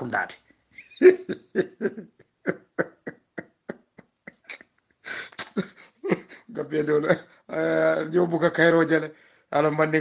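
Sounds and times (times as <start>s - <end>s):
man laughing in short bursts: 0.8s - 6.4s.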